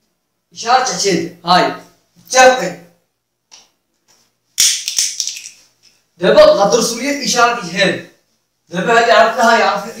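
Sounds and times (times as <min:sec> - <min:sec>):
objects rustling and clicking: 0:04.0 - 0:06.0.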